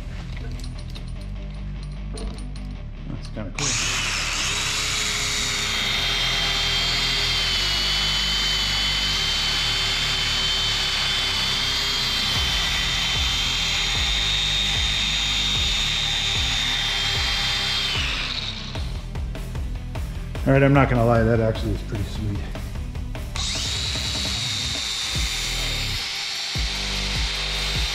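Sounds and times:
sanding belt rasping on metal: 3.6s - 18.7s, 23.4s - 27.9s
high motor whine: 3.6s - 19.2s, 23.2s - 27.9s.

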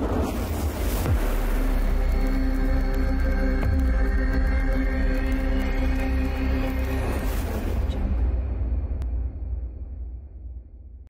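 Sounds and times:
deep bass drone: 0.0s - 10.9s.

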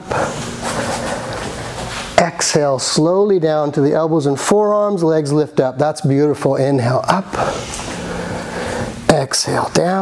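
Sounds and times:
person inhaling close to microphone: 0.0s - 2.1s, 7.3s - 9.1s.

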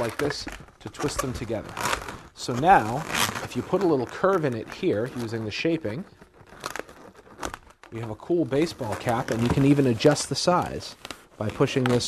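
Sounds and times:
balloon scrapes: 0.0s - 12.0s
rubber balloons scuffing: 6.5s - 12.0s.

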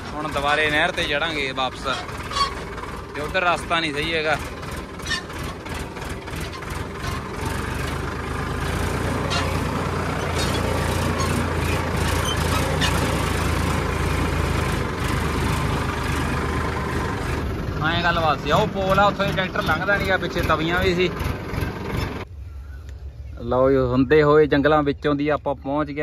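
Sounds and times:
tractor diesel engine running: 0.0s - 22.5s.

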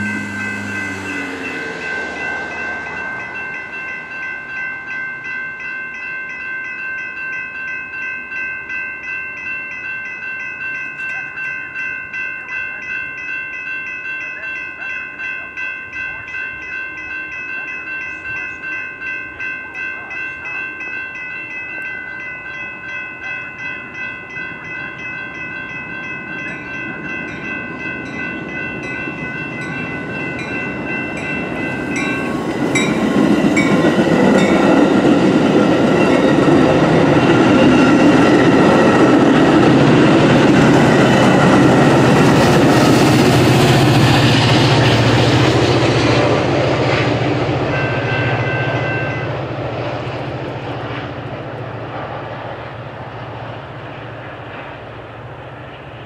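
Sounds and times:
crossing warning bells ringing: 0.0s - 56.0s
train rumble: 0.0s - 56.0s.

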